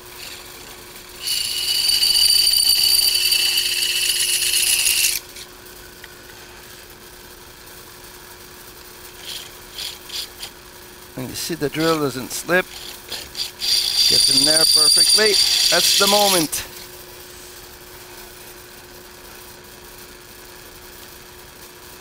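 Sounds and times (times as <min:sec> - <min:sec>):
drill press motor humming: 0:00.2 - 0:05.4, 0:11.2 - 0:16.6
high-pitched drilling whine: 0:01.2 - 0:05.2, 0:11.6 - 0:16.7.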